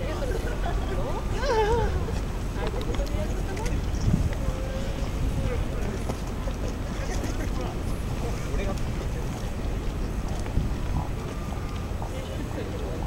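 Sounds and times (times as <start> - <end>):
faint people talking: 0.0 - 13.0
wind rumbling on microphone: 0.0 - 13.0.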